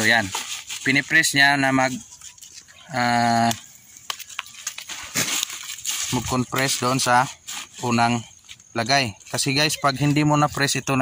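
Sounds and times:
cabbage leaves rustling: 0:00.0 - 0:11.0.

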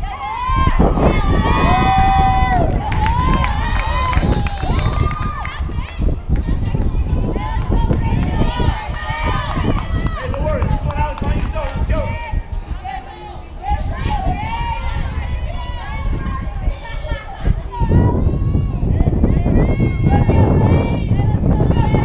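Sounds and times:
high voices shouting and chanting: 0:00.0 - 0:22.0
steady low rumble: 0:00.0 - 0:22.0.

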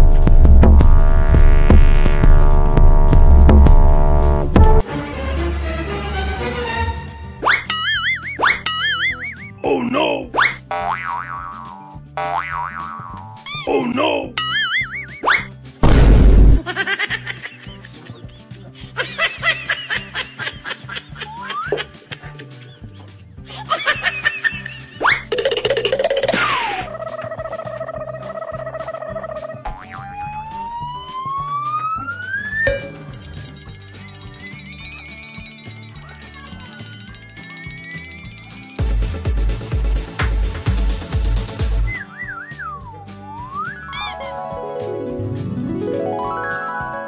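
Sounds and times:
comedy music with low beat: 0:00.0 - 0:47.0
cartoon boing swoop and warble: 0:07.4 - 0:09.4, 0:10.4 - 0:13.8, 0:14.4 - 0:15.5, 0:26.2 - 0:33.0, 0:43.3 - 0:44.4
rising whistle sound effect: 0:07.4 - 0:09.6, 0:29.9 - 0:32.9, 0:41.8 - 0:44.4
held tone: 0:07.7 - 0:09.7, 0:31.7 - 0:35.8.

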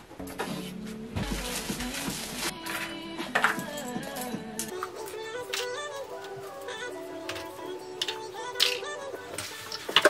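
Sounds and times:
background music held notes: 0:00.0 - 0:10.0.

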